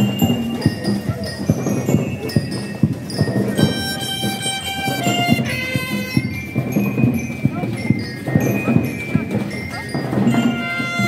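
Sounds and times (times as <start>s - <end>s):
bell-like notes: 0.0s - 11.0s
marching band drums: 0.0s - 11.0s.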